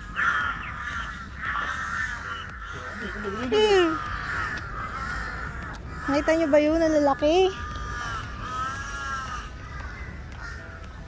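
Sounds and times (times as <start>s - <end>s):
crows calling: 0.0s - 11.0s.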